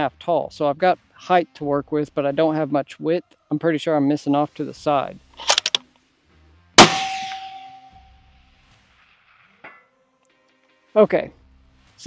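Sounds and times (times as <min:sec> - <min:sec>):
rifle shot with ringing tail: 0:06.8 - 0:08.1
distant steel target ding: 0:06.8 - 0:08.2.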